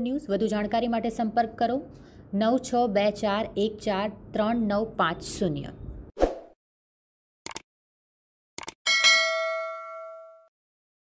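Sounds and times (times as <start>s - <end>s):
bright notification bell ding: 8.9s - 10.5s.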